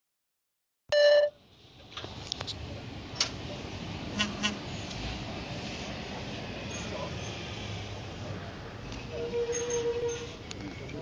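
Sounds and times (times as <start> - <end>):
short loud beep: 0.9 - 1.4.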